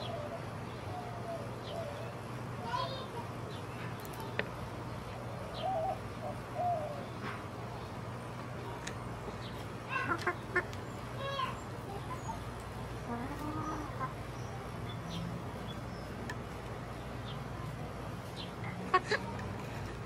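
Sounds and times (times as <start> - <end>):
steady low hum: 0.0 - 20.0
hens clucking: 9.6 - 14.8, 18.4 - 20.0.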